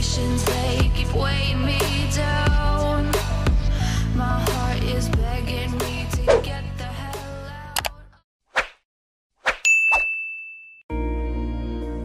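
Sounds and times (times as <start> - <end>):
music: 0.0 - 8.2, 10.9 - 12.0
noisy swipe: 6.3 - 6.5
high metallic ding: 9.6 - 10.8.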